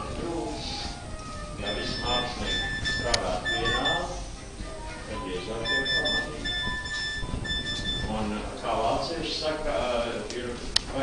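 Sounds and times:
high electronic beeps: 1.6 - 4.4, 5.1 - 8.3.

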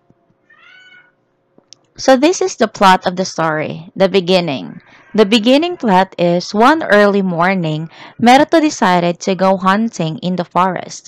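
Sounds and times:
faint high-pitched call: 0.5 - 1.1.

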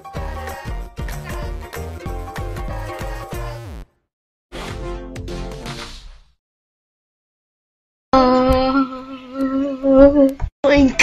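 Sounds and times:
cartoon voice humming: 2.6 - 3.8.

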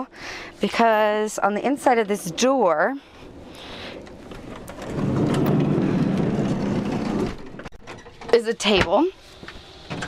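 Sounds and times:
sliding door rumbling shut: 4.3 - 8.2.

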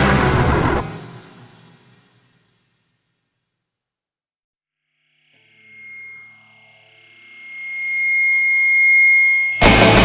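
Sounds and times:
heavy rock band playing: 0.0 - 1.2, 9.6 - 10.0
distorted held high tone: 4.8 - 10.0.

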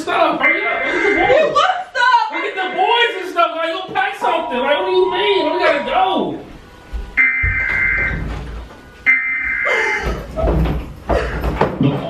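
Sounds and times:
electronic alert chime: 7.2 - 8.1, 8.9 - 9.7
person crying: 9.6 - 10.2.

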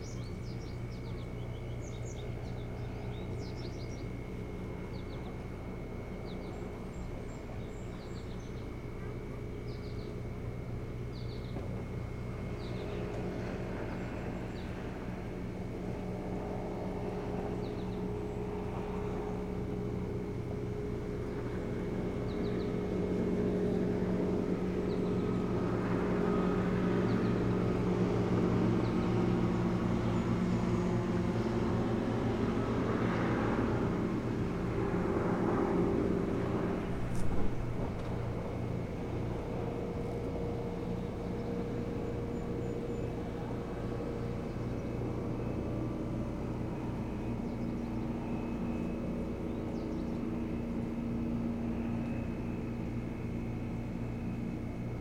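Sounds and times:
motorboat engine running: 0.0 - 4.1, 6.2 - 55.0
faint high bird chirps: 0.0 - 5.5, 6.2 - 10.2, 11.1 - 11.6.

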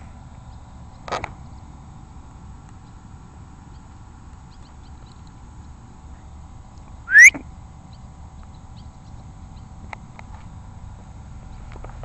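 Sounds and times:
person whistling rising note: 7.1 - 7.4.

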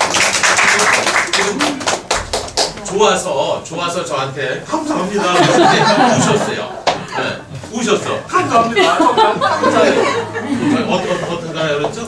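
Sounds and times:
small audience clapping: 0.0 - 3.3
laughter: 5.2 - 7.4, 8.6 - 11.3.

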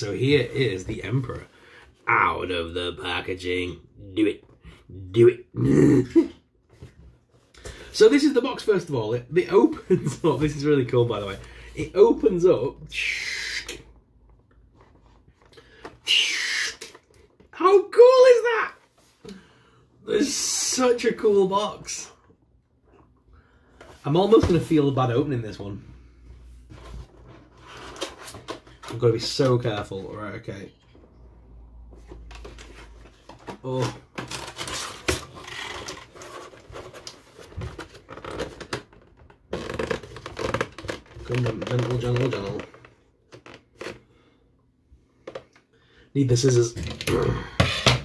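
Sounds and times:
plastic packaging scraping: 32.1 - 44.0.

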